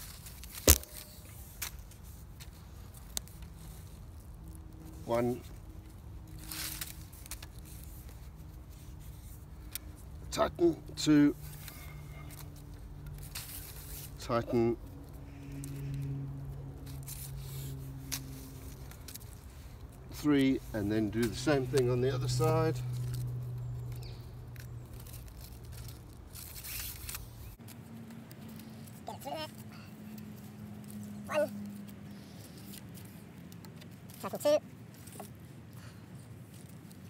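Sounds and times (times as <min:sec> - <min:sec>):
cord pulled around wooden poles: 0:00.0 - 0:37.0.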